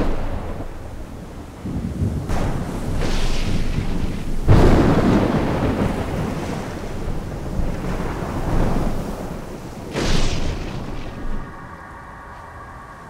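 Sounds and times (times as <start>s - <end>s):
thunder clap and rumble: 0.0s - 13.0s.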